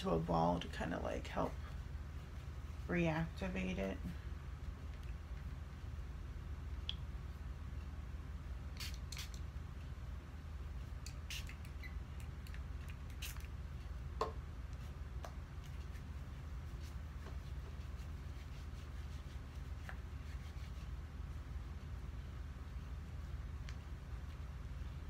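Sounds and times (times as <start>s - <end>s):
low steady hum: 0.0s - 25.0s.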